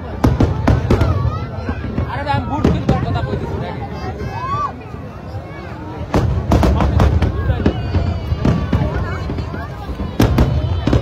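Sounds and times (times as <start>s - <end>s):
fireworks bangs: 0.0s - 4.7s, 5.4s - 11.0s
crowd chatter: 0.0s - 11.0s.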